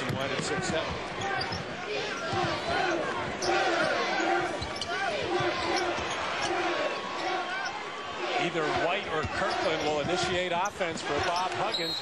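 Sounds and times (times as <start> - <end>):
crowd voices in arena: 0.0 - 12.0.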